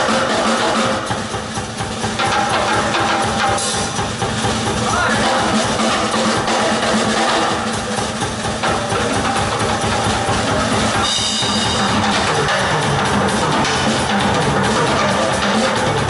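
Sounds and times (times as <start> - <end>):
drum kit: 0.0 - 16.0
rock band playing: 0.0 - 16.0.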